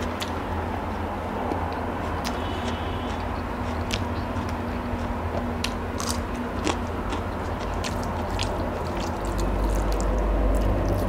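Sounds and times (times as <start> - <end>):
person chewing crunchy food: 1.4 - 11.0
sharp crisp crunches: 2.2 - 11.0.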